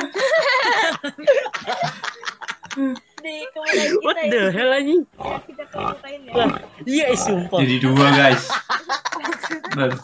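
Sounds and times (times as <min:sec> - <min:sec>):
pig grunting: 0:05.2 - 0:07.7.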